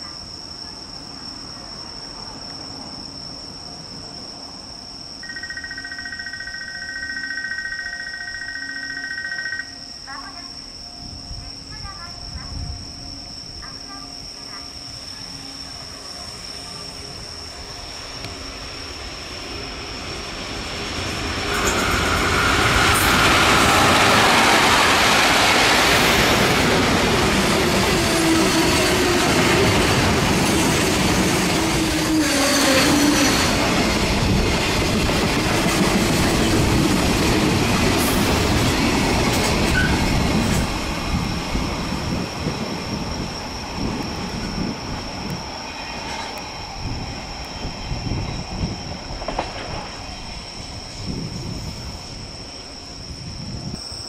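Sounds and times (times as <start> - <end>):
freight train passing: 0.0 - 54.0.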